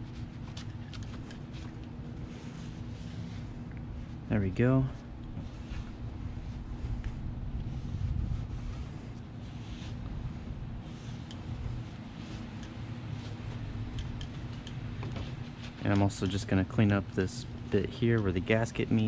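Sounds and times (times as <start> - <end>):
low background hum: 0.0 - 19.0
cloth rubbing on rubber seal: 14.4 - 16.0.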